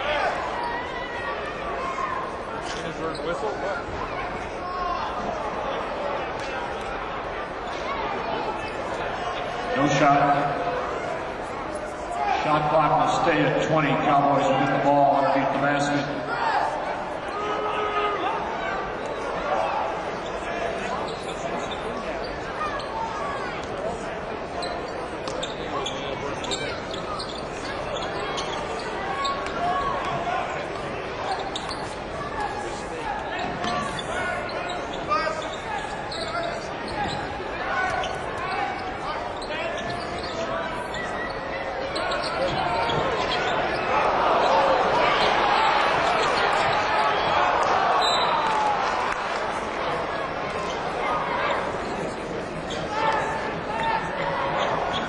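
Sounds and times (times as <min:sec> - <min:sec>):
crowd murmur: 0:00.0 - 0:55.0.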